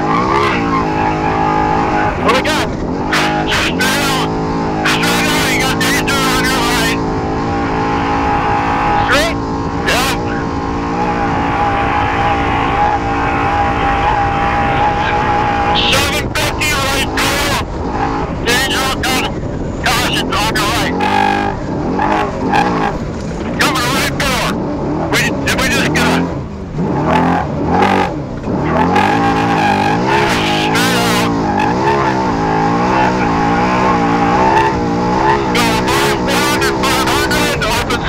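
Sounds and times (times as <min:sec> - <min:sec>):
truck engine revving: 0:00.0 - 0:38.0.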